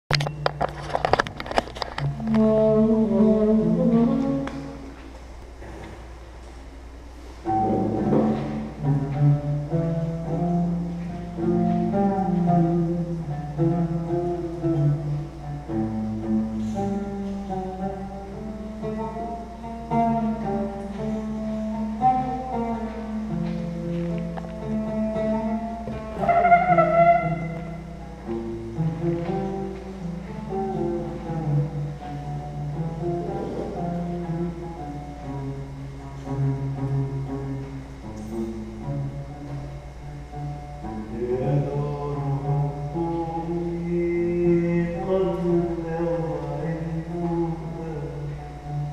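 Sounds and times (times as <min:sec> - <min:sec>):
bass guitar: 0:00.0 - 0:48.9
plucked string ensemble: 0:07.5 - 0:48.9.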